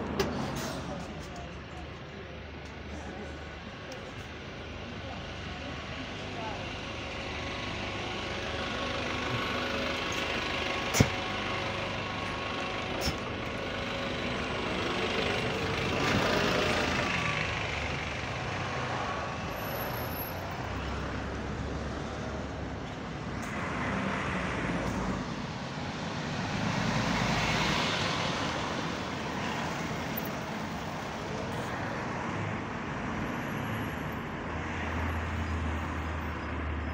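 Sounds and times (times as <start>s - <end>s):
bus engine running: 0.0s - 34.5s
passing road traffic: 0.0s - 36.9s.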